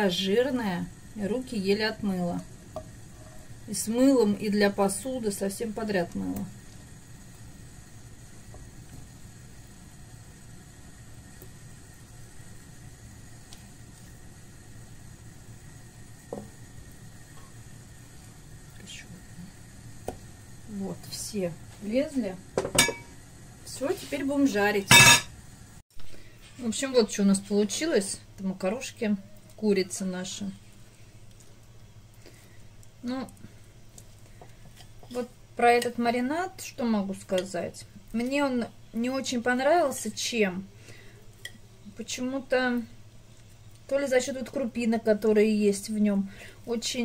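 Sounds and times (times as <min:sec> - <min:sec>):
low background hum: 0:00.0 - 0:47.0.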